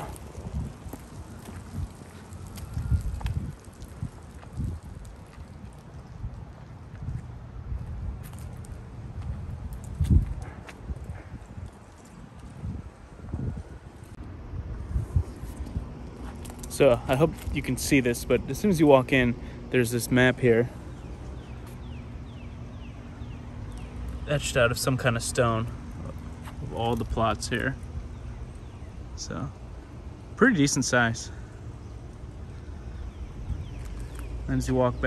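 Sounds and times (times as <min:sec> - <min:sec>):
footsteps on pavement: 0:00.0 - 0:12.8, 0:14.9 - 0:19.1, 0:20.7 - 0:28.9
wind on microphone: 0:00.0 - 0:16.2.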